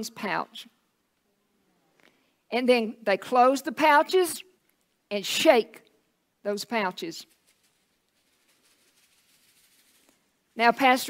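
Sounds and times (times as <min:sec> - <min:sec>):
very faint rustle: 0:07.2 - 0:10.6.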